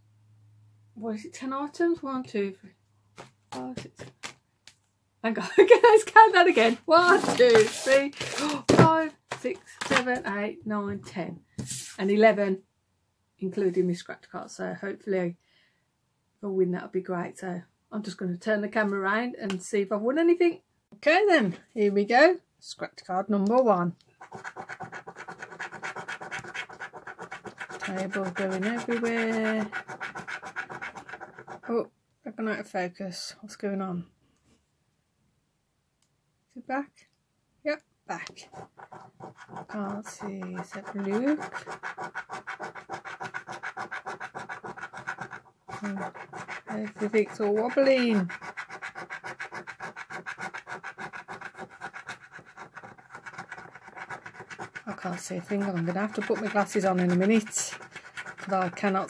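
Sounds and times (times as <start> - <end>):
coin scraping scratch card: 6.6 - 8.6, 24.2 - 31.7, 38.2 - 59.0.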